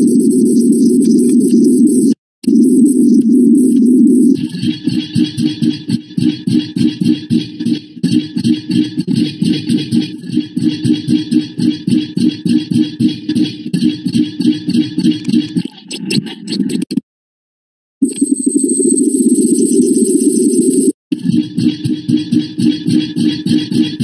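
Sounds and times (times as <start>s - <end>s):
loud music with fast pulse: 4.4s - 15.6s, 21.1s - 24.0s.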